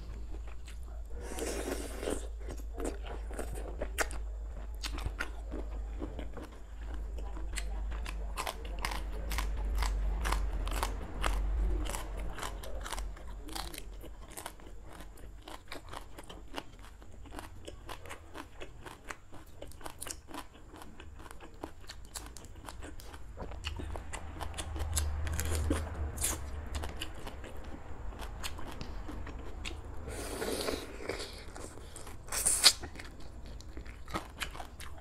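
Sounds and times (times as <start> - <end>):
crunching and chewing stalks: 0.0 - 35.0.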